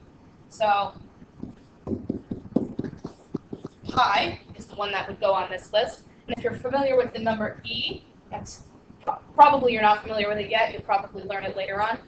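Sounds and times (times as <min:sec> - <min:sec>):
stylus tapping and scratching on tablet: 0:00.6 - 0:12.0.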